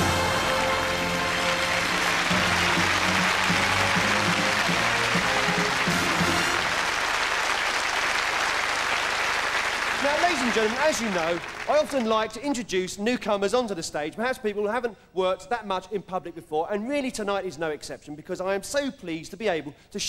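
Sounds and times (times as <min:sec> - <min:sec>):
live band music: 0:00.0 - 0:07.4
audience applauding: 0:00.0 - 0:12.4.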